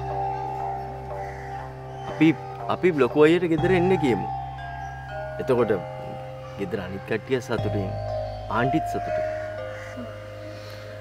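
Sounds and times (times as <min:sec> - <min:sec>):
soft sustained notes: 0:00.0 - 0:11.0.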